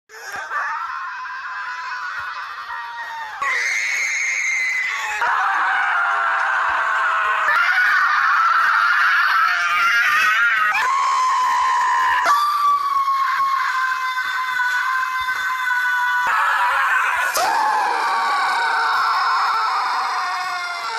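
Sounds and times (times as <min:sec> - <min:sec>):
high-pitched human screams: 0:00.1 - 0:20.9.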